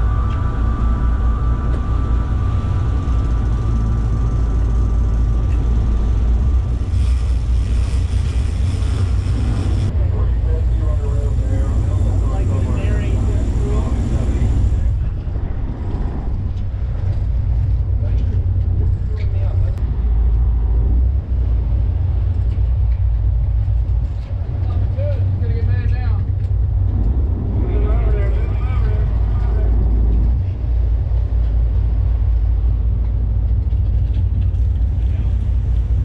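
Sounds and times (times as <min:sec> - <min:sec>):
boat engine rumbling: 0:00.0 - 0:36.0.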